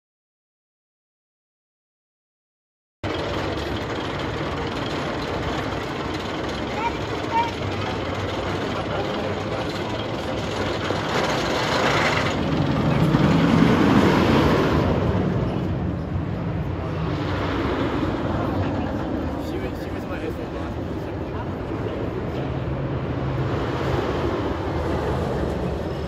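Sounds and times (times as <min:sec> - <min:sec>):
outdoor noise: 0:03.0 - 0:26.0
roller coaster train rumbling: 0:03.0 - 0:26.0
voices: 0:04.8 - 0:13.6, 0:15.4 - 0:22.8.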